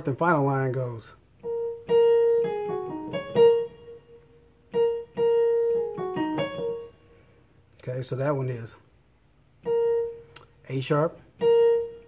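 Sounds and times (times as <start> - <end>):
keyboard piano melody: 1.4 - 7.4, 9.6 - 12.0.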